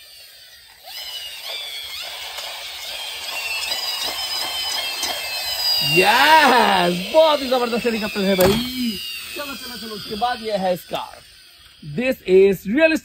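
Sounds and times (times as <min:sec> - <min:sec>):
toy helicopter electronic warbling: 0:00.0 - 0:13.0.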